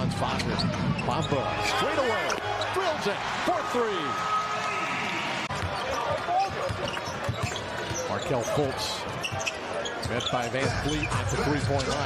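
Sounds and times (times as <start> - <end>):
crowd and voices: 0.0 - 12.0.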